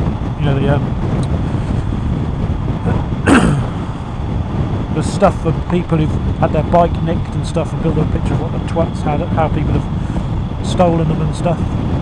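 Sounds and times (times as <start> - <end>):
motorcycle engine and road rumble: 0.0 - 12.0
wind rushing over microphone: 0.0 - 12.0.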